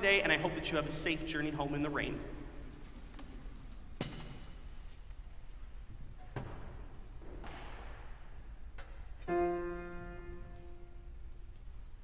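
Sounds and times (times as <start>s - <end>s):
low steady hum: 7.8s - 12.0s.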